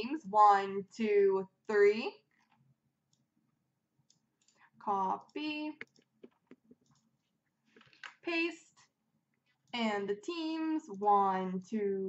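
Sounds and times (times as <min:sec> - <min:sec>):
computer mouse clicks: 0:02.3 - 0:03.3, 0:04.0 - 0:08.2.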